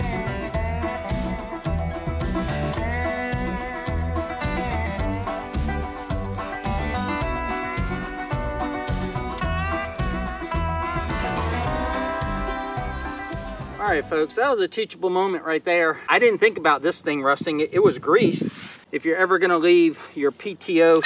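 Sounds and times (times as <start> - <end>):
country music with plucked guitar: 0.0 - 14.4.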